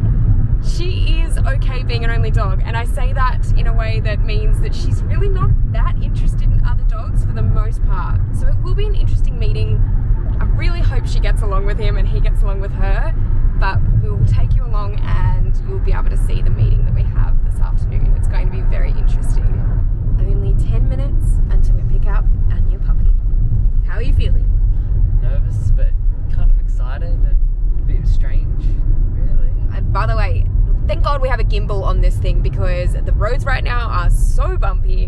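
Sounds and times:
car cabin road rumble: 0.0s - 35.0s
people talking: 0.6s - 9.8s, 10.4s - 23.2s, 23.8s - 24.5s, 25.2s - 35.0s.

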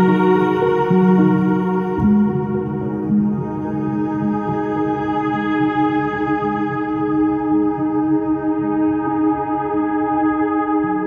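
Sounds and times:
ambient music of held chords: 0.0s - 11.0s.

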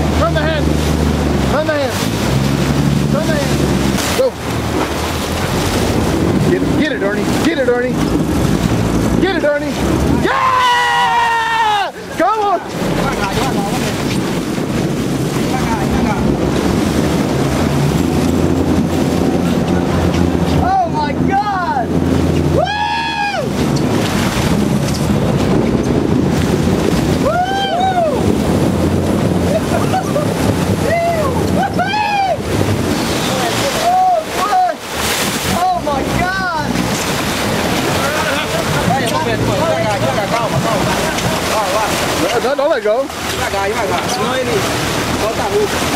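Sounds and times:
boat engine running: 0.0s - 45.9s
water rushing along hull: 0.0s - 45.9s
wind on microphone: 0.0s - 45.9s
excited shouts and whoops: 10.2s - 12.0s, 22.5s - 23.5s, 27.2s - 28.3s, 30.8s - 32.5s.

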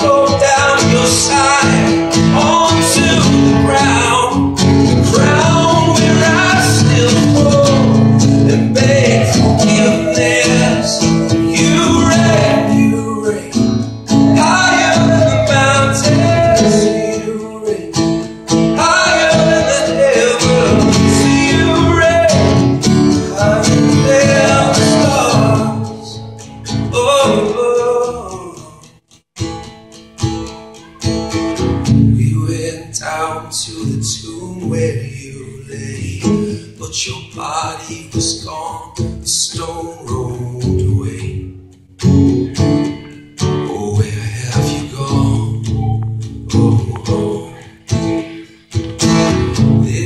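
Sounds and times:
man singing: 0.0s - 29.0s, 32.0s - 41.6s, 43.6s - 48.7s, 49.4s - 50.0s
acoustic guitar strumming: 0.0s - 50.0s.

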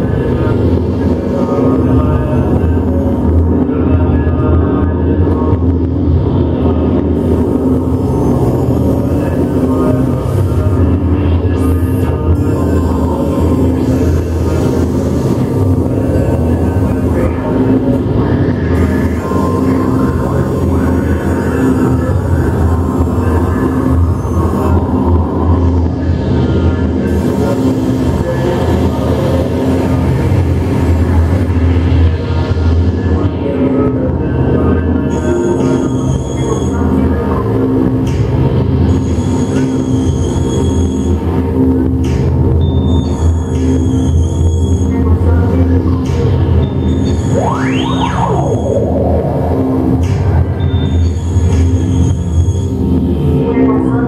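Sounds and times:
synthesizer drone music: 0.0s - 54.0s.

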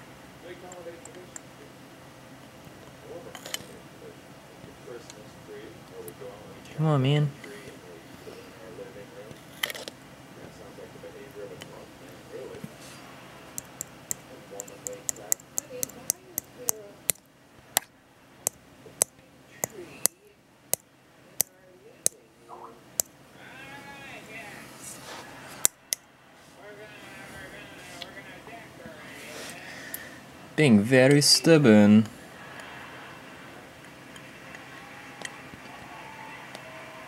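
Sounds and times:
tongs clicking on plastic cup: 13.6s - 14.0s
faint voice: 21.6s - 25.6s.

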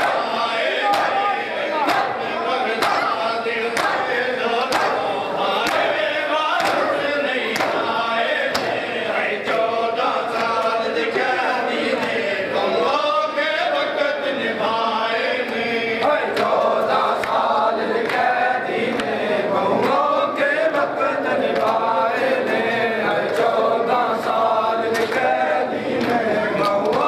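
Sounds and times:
men chanting a lament: 0.0s - 27.0s
chest-beating slaps: 4.7s - 6.0s.

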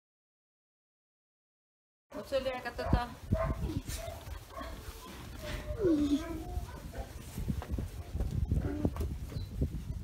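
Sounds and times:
puppy whining and whimpering: 5.5s - 6.7s.

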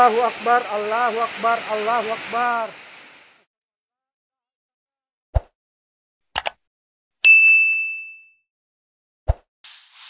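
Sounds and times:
high bell ding: 7.2s - 8.4s.

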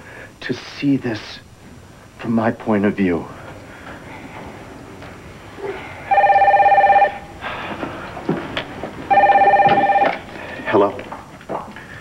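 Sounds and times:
telephone ringing: 6.1s - 7.4s, 9.1s - 10.8s.

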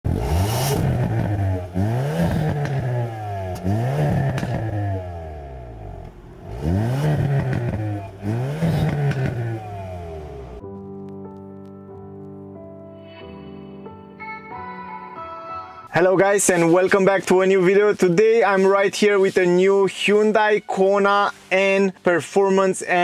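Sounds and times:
car engine revving: 0.0s - 10.6s
exhaust cracks: 0.0s - 12.3s
soft music: 10.2s - 22.0s.

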